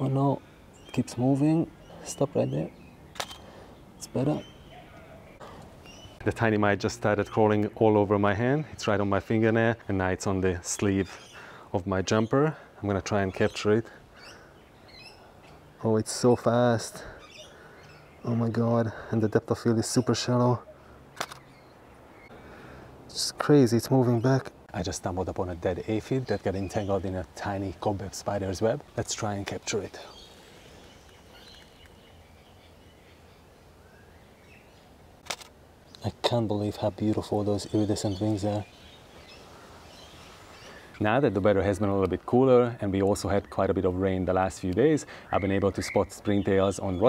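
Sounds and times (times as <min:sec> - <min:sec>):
outdoor background noise: 0:00.0 - 0:47.0
camera shutter click: 0:03.1 - 0:03.4, 0:21.2 - 0:21.5, 0:35.2 - 0:35.5
faint bird chirps: 0:13.3 - 0:22.6.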